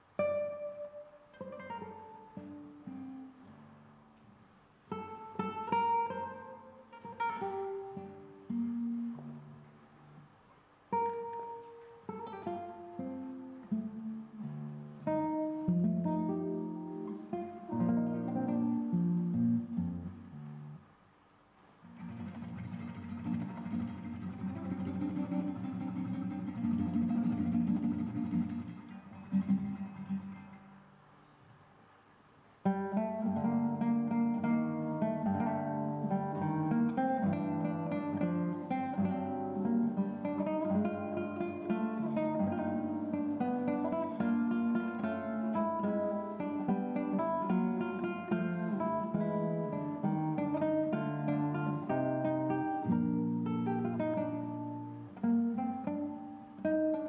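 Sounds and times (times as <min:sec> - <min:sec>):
classical guitar fingerstyle: 0:00.0 - 0:57.0.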